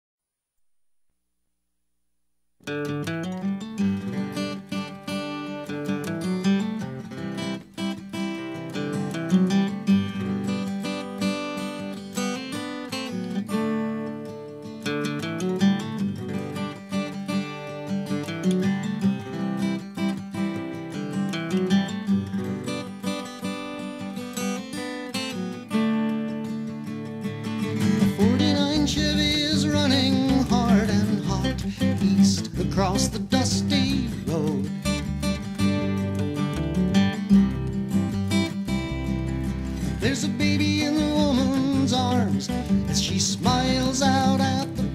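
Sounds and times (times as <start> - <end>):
acoustic guitar strumming: 2.6 - 44.9.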